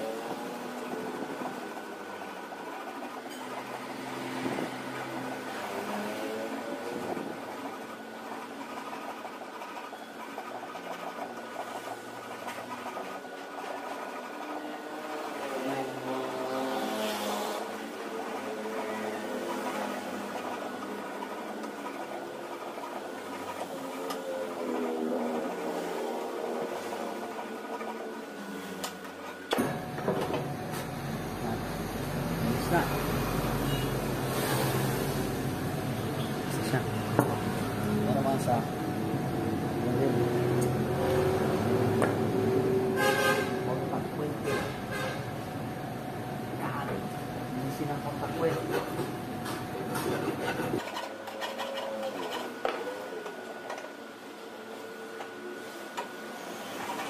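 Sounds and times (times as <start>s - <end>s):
file scraping metal: 49.8s - 52.8s.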